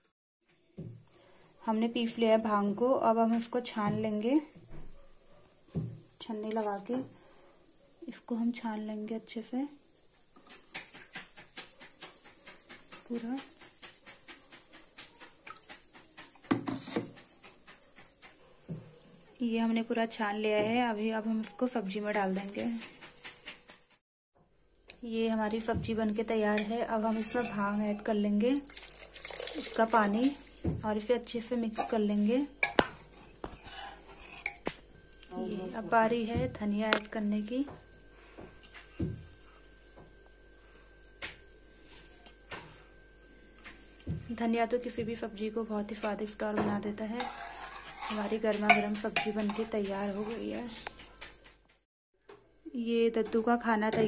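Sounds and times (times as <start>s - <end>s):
liquid pouring through strainer: 28.6s - 30.6s
utensils clicking on metal pot: 46.8s - 51.4s.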